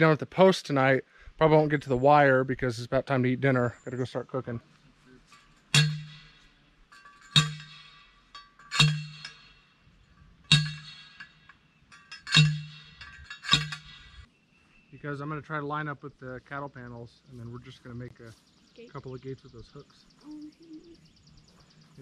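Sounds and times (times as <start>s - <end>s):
metal post clanging strikes: 5.2s - 14.3s.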